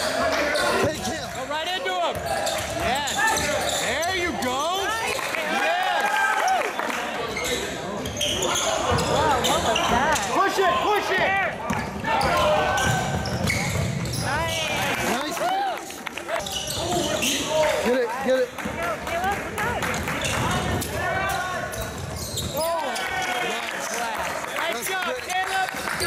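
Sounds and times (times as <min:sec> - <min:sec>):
sneaker squeaks on gym floor: 0:02.1 - 0:04.8, 0:07.3 - 0:10.4, 0:11.8 - 0:14.9, 0:16.4 - 0:17.6, 0:21.3 - 0:23.0.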